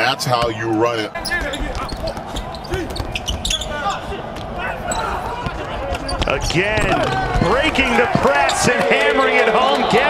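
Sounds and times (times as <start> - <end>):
low arena background noise: 0.0 - 10.0
basketball dribbling: 1.2 - 3.7
shoe squeaks: 1.2 - 4.0, 4.8 - 5.2, 6.0 - 7.3.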